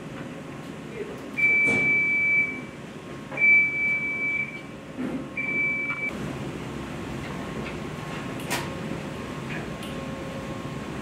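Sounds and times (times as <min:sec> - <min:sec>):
laundry machinery hum: 0:00.0 - 0:11.0.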